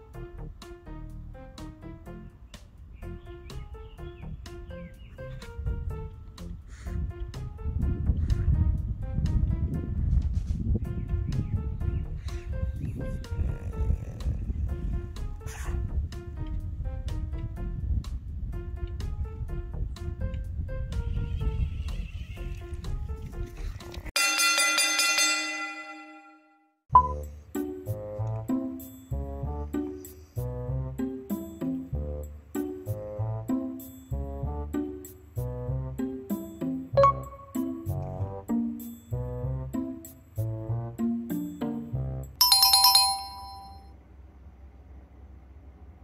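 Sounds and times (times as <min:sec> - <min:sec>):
light background music: 0:00.0 - 0:24.1, 0:27.0 - 0:43.6
bell ringing: 0:24.2 - 0:27.2, 0:37.0 - 0:37.8, 0:42.4 - 0:43.9
bright high chime strikes: 0:42.4 - 0:43.8.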